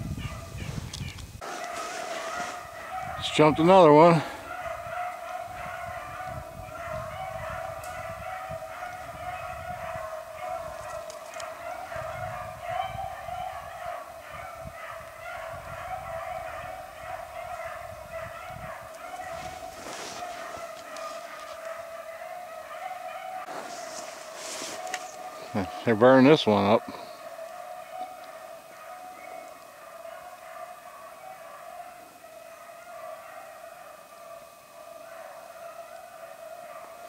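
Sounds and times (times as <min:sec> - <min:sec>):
hounds baying: 0:00.0 - 0:00.8, 0:01.4 - 0:37.0.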